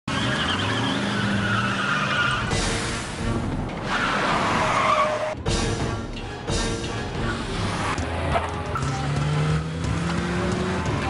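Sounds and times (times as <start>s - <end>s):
car engines running hard: 7.0s - 11.0s.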